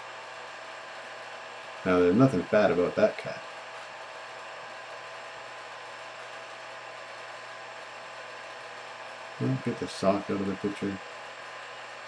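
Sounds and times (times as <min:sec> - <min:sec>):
steady whirring hiss: 0:00.0 - 0:12.0.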